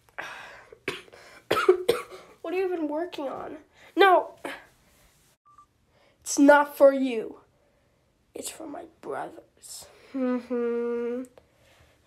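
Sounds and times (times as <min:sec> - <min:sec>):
boy coughing: 0:00.8 - 0:02.4
boy clearing throat: 0:00.9 - 0:02.3.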